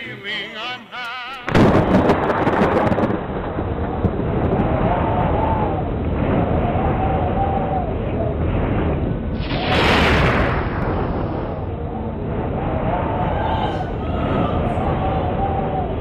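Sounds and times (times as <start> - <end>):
thunder crack and rumble: 1.5 - 16.0.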